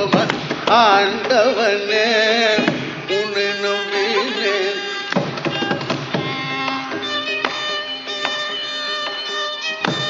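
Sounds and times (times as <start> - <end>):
woody percussion strokes: 2.6 - 10.0.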